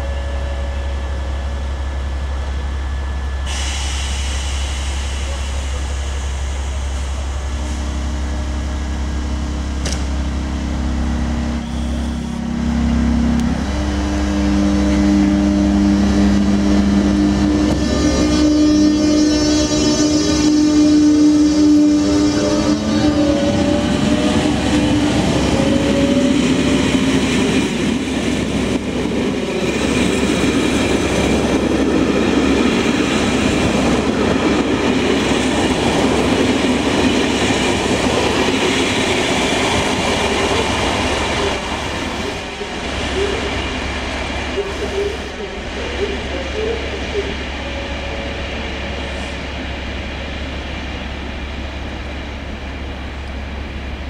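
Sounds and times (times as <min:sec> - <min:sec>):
electric locomotive whine: 0:00.0 - 0:54.0.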